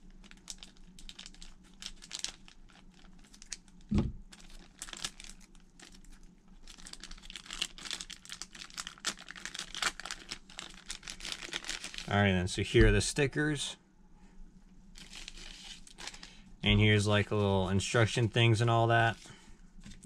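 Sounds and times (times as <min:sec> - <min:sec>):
plastic packaging crinkling: 0:00.1 - 0:12.2, 0:15.0 - 0:16.4
thump: 0:03.9 - 0:04.2.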